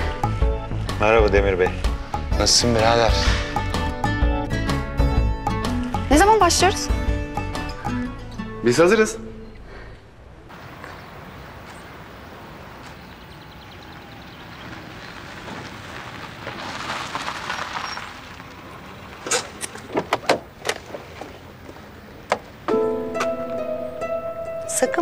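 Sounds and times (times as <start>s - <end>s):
plucked string music: 1.4s - 9.7s, 22.7s - 25.0s
car tyres on cobblestones: 9.8s - 22.9s.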